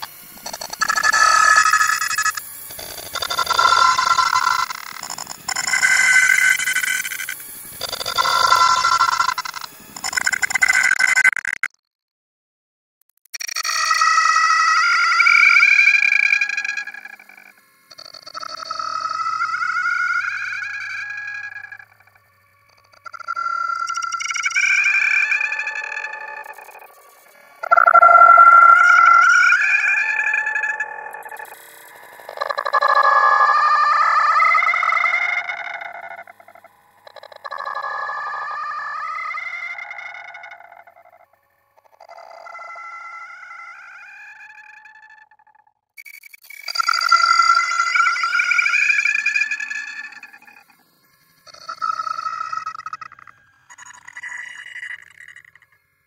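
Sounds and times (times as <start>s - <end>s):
processed electronic sound rising pitch: 0.0s - 11.7s, 14.2s - 45.0s, 46.4s - 55.9s.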